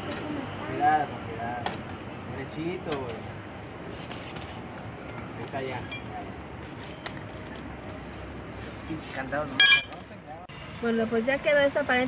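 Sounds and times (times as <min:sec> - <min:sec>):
steady background noise: 0:00.0 - 0:12.0
metallic clink: 0:09.6 - 0:10.0.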